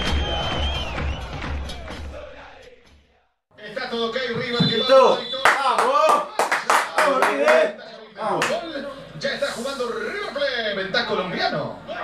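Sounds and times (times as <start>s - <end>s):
men's voices: 3.6s - 11.2s
sharp hand claps: 5.5s - 7.7s.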